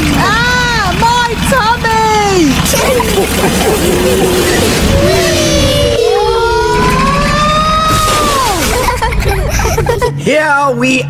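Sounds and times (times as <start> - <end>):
cartoon train rumbling on rails: 0.0 - 10.2
long high rising and falling tone: 3.1 - 9.1.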